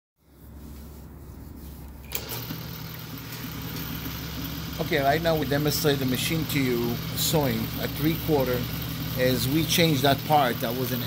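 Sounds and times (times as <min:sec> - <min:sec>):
sewing machine motor humming: 0:02.1 - 0:11.0.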